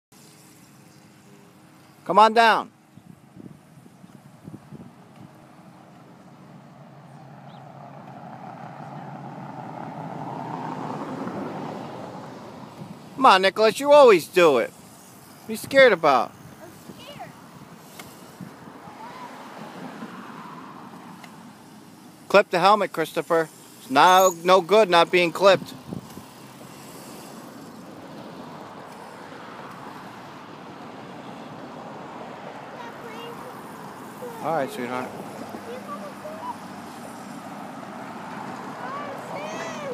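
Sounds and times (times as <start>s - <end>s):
road traffic: 0.1s - 39.9s
vehicle whir: 2.8s - 39.9s.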